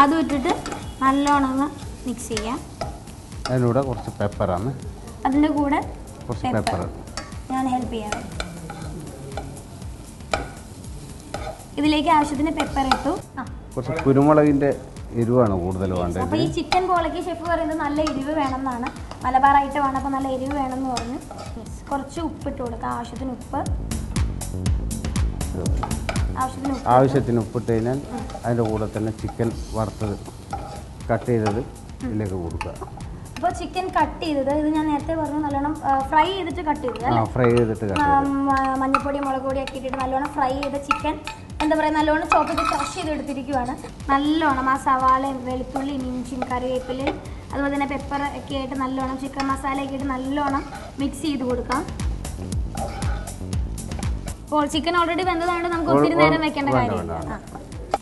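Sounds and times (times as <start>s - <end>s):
low sizzle: 0.0s - 58.0s
spoon clinking against pot: 0.5s - 1.0s, 11.3s - 11.6s, 36.9s - 41.7s, 42.3s - 43.0s
spoon stirring food in pot: 8.1s - 13.2s, 20.5s - 21.6s, 25.8s - 26.8s, 28.0s - 31.7s, 36.8s - 43.0s, 50.4s - 51.2s, 51.8s - 54.4s
woman's voice: 16.3s - 23.7s, 38.2s - 51.9s, 54.5s - 57.4s.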